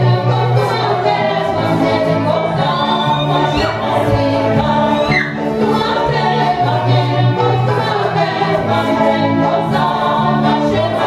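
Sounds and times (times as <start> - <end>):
group singing folk song: 0.0 - 11.0.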